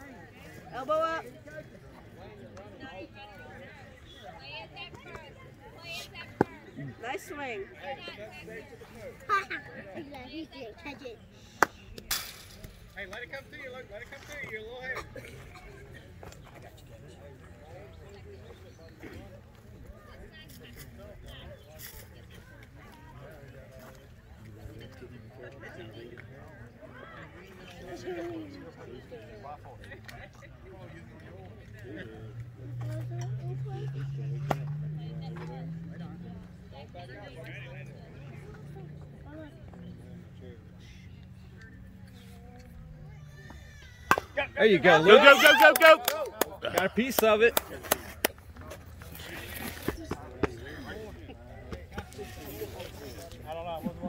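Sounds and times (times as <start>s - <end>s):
background chatter of voices: 0.0s - 54.0s.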